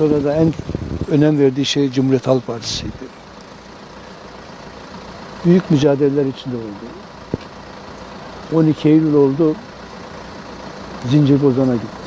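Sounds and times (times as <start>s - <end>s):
street background rumble: 0.0s - 12.0s.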